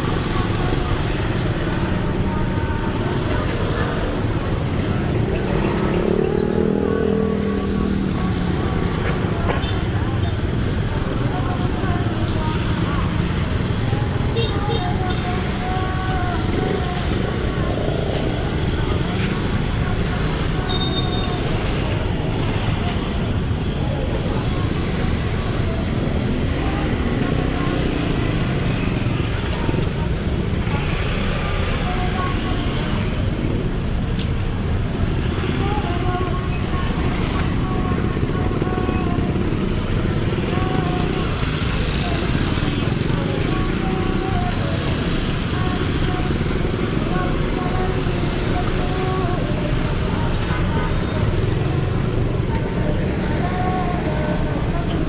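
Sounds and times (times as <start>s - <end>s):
motorcycle and car engines: 0.0s - 55.0s
people's voices: 0.0s - 55.0s.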